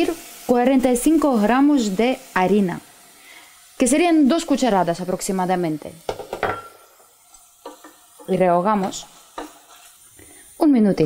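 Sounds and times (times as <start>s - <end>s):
faint sizzle: 0.0s - 11.0s
wooden spoon scraping in pot: 7.3s - 10.1s.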